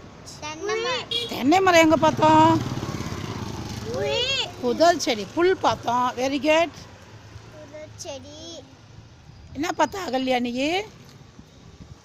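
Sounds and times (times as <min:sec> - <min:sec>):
motorcycle engine running at low revs: 0:01.7 - 0:04.0.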